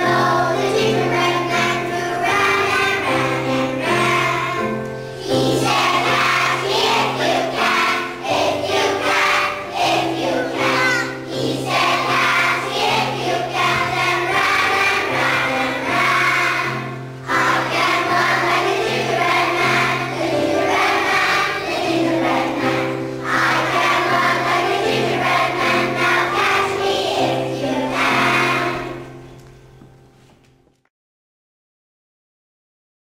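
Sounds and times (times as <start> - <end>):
children's choir singing: 0.0 - 29.4
instrumental accompaniment: 0.0 - 30.8.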